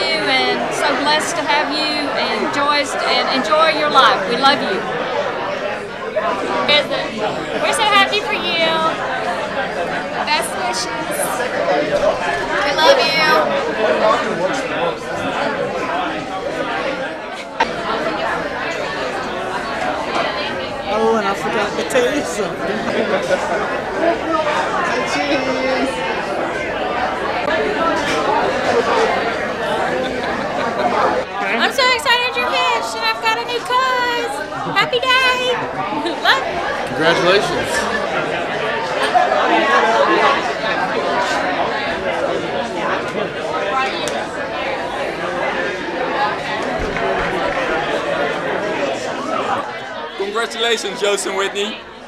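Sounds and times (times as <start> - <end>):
chatter of many people: 0.0 - 52.0.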